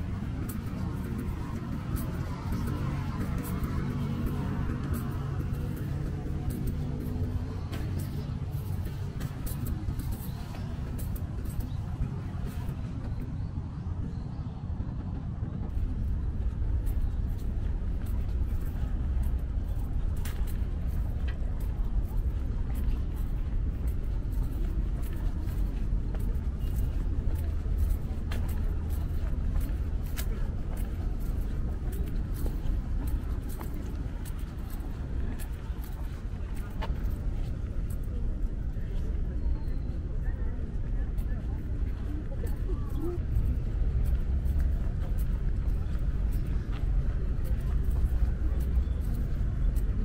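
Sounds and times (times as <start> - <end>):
low outdoor rumble: 0.0 - 50.0.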